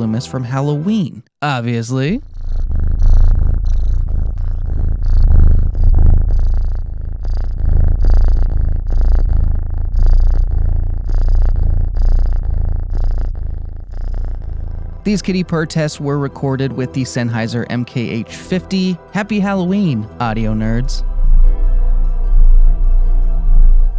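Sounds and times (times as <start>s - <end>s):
kitten purring: 2.0s - 21.5s.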